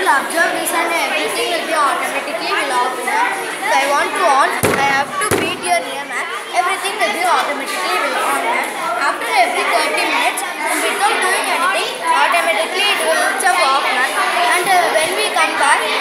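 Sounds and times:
sharp knocks: 4.6 - 5.9
many voices echoing in a hall: 4.6 - 7.2, 10.2 - 16.0.

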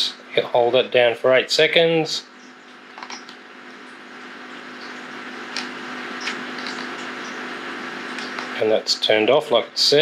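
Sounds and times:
electric fan whirring: 0.0 - 10.0.

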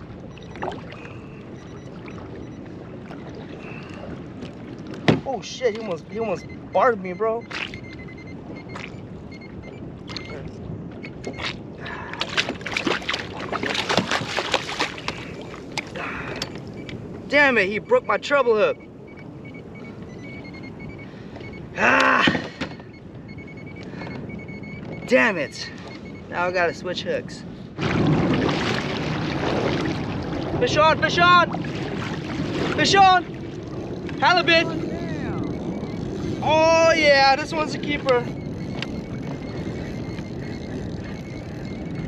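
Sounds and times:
wind and water noise: 0.0 - 42.0
faint high-pitched tones: 34.2 - 42.0.

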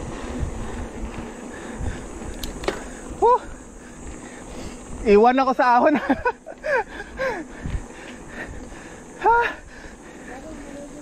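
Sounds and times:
bike tyres on pavement: 0.0 - 11.0
rushing wind: 0.0 - 11.0.

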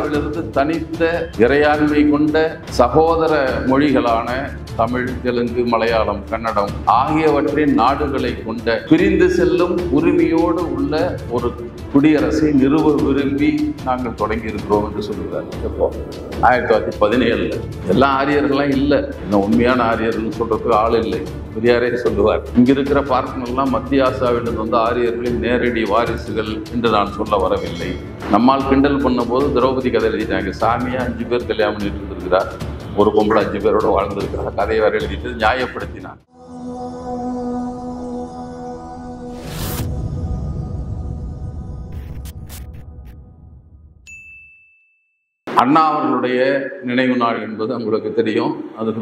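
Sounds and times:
background music: 0.0 - 43.8, 45.5 - 49.0
person speaking: 12.2 - 35.8
bell-like ding: 44.1 - 45.3.

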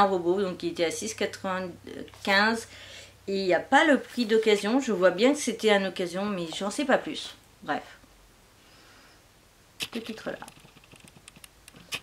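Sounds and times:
woman speaking: 0.0 - 8.0, 9.8 - 10.6
faint soft hiss: 0.0 - 12.0.

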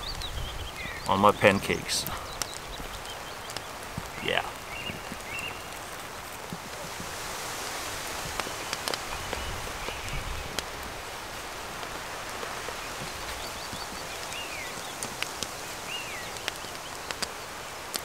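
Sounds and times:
rain on a tent: 0.0 - 18.0
raindrop ticks: 0.9 - 7.2, 8.2 - 18.0.

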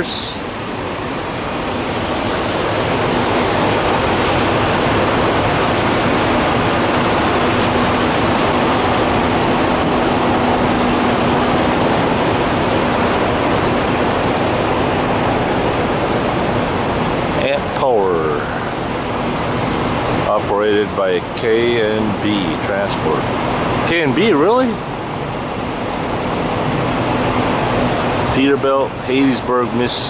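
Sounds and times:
faint steady hum: 0.0 - 30.0
truck machinery rushing noise: 0.0 - 30.0.

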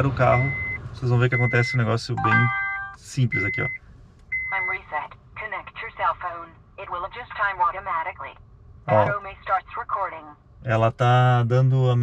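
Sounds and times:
tinny recorded voice prompt: 8.9 - 10.9.

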